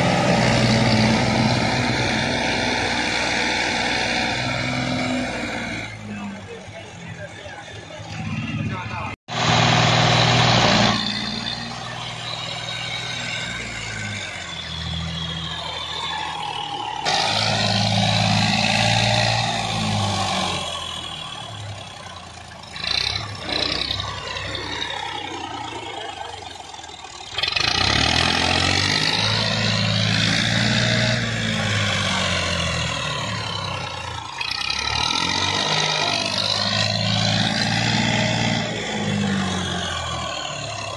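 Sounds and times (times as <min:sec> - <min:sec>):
diesel tractor engine revving: 0:00.0 - 0:40.9.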